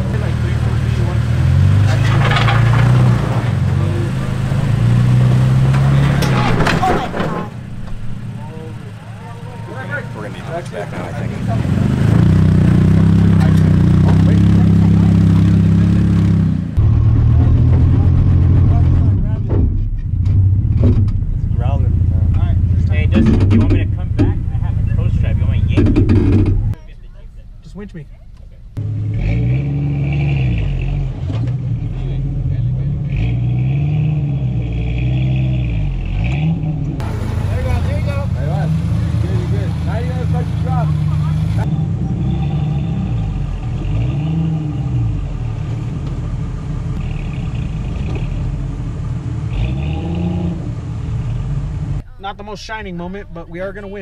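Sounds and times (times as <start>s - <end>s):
engine revving in surges: 0.0s - 26.8s, 28.8s - 52.0s
truck engine running steadily: 0.0s - 28.8s, 36.6s - 44.1s, 44.8s - 54.0s.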